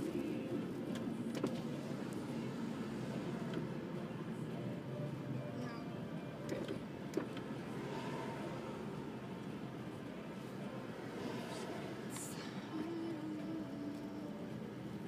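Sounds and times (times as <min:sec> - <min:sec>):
car engine low rumble: 0:00.0 - 0:15.0.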